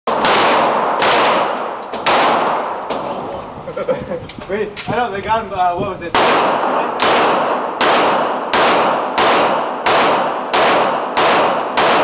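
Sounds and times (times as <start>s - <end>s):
pistol shots echoing indoors: 0.1s - 3.1s, 6.2s - 12.0s.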